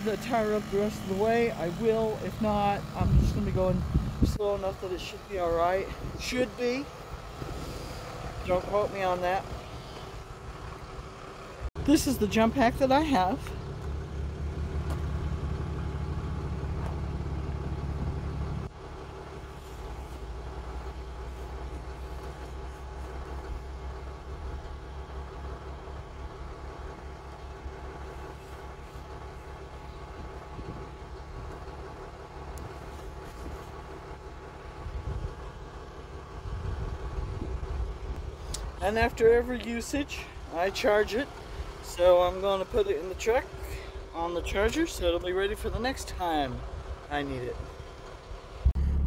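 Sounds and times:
diesel truck engine idling: 0.0 - 49.0.

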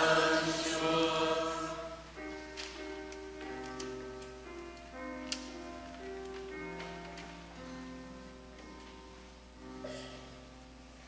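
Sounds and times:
organ playing slow chords: 0.0 - 3.2.

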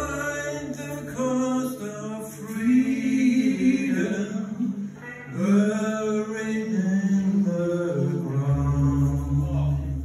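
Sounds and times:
men singing long held notes: 0.0 - 10.0.

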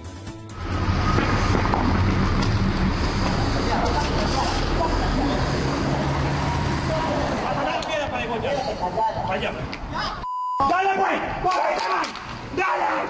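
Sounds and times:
street traffic noise: 0.5 - 13.0.

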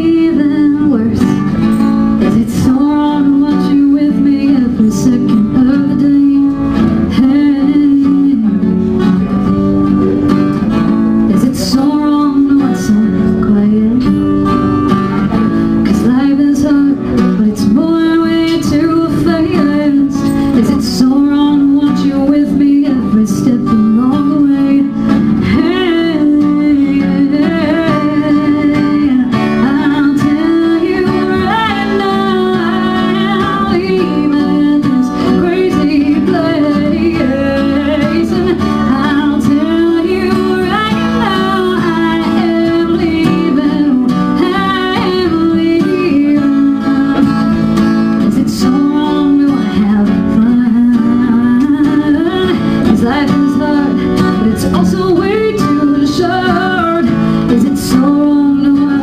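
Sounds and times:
strummed acoustic guitar: 0.0 - 59.0
woman singing: 0.0 - 59.0.

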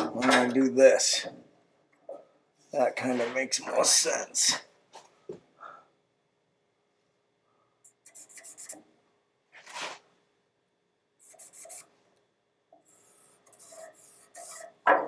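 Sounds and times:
marker scratching on steel: 7.9 - 8.8, 11.2 - 11.9, 12.8 - 14.8.

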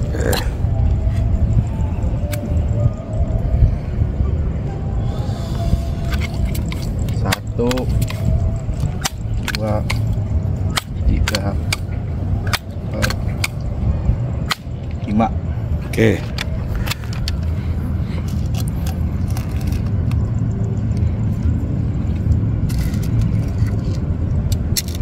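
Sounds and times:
low rumble: 0.0 - 25.0
rifle metallic clicks: 10.7 - 13.7.

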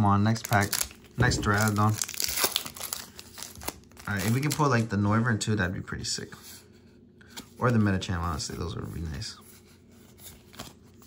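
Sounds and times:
foil wrapper tearing: 0.0 - 4.9.

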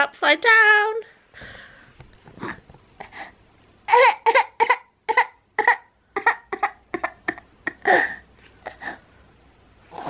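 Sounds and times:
baby crying in choppy sobs: 3.9 - 8.2.

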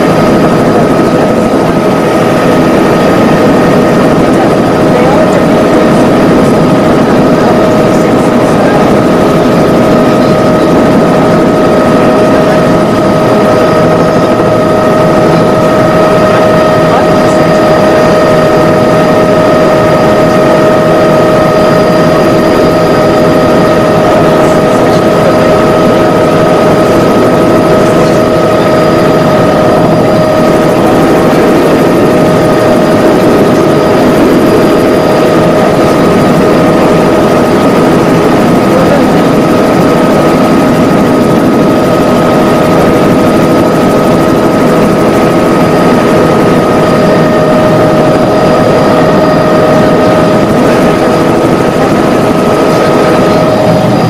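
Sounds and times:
aircraft engine drone in cabin: 0.0 - 54.0
constant high whine: 0.0 - 54.0.

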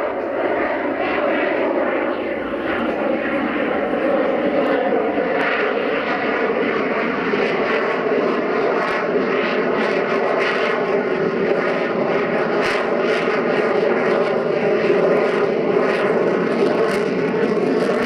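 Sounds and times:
jet engine roar: 0.0 - 18.0.

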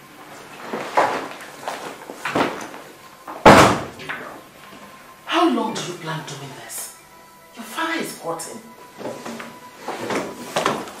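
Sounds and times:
wooden door banging shut: 3.4 - 4.2.

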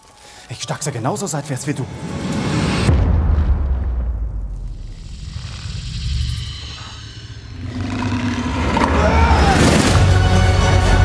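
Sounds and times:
low rumble: 2.0 - 10.0.

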